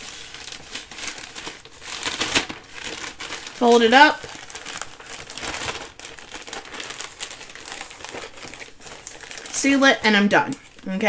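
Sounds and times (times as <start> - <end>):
plastic mailer bag crinkling: 0.0 - 11.0.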